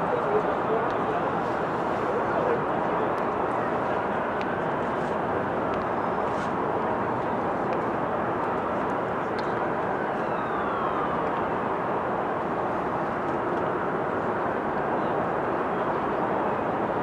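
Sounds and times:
road traffic hum: 0.0s - 17.0s.

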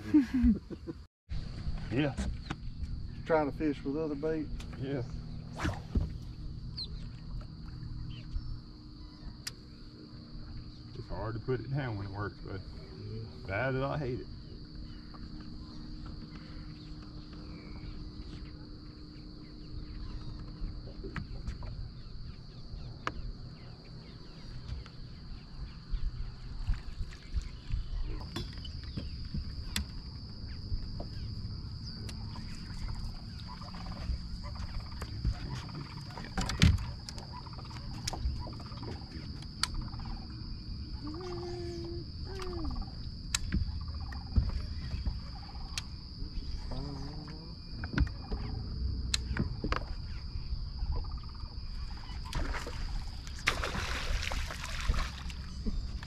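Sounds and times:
steady high-pitched whine: 1.3s - 53.9s.

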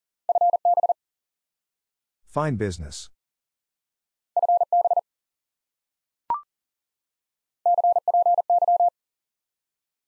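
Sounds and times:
morse code beeps: 0.3s - 1.0s, 4.4s - 5.0s, 7.7s - 8.9s.

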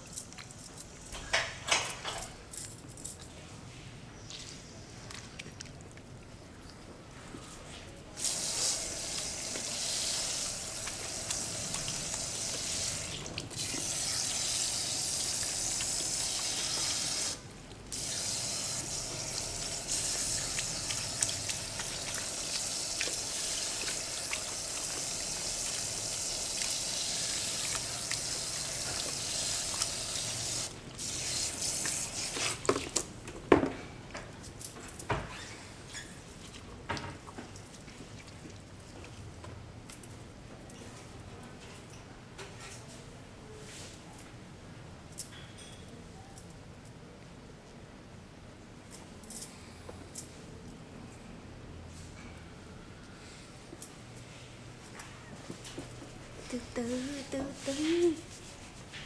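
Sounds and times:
shower sprayer spraying water: 8.2s - 32.8s
water splashes: 18.8s - 30.8s.

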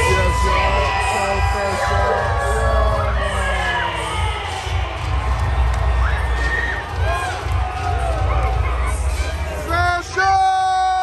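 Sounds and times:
crowd cheering and screaming: 0.0s - 11.0s
entrance music with heavy bass: 0.0s - 11.0s.

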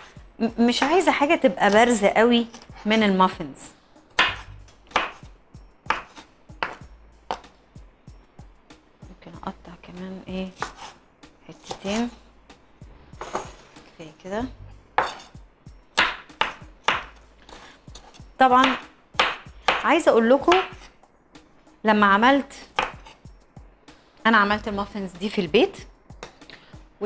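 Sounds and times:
knife chopping on wooden board: 4.2s - 5.2s, 5.9s - 7.5s, 10.5s - 11.0s, 11.6s - 12.1s, 15.0s - 15.4s, 16.0s - 20.9s, 22.7s - 23.2s.

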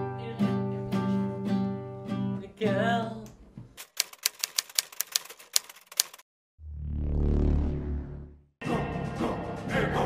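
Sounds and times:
typewriter key strikes: 3.8s - 6.2s.

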